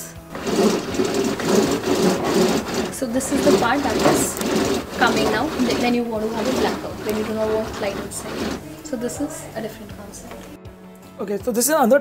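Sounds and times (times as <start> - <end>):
blind cord rattling through rail: 0.0 - 10.6.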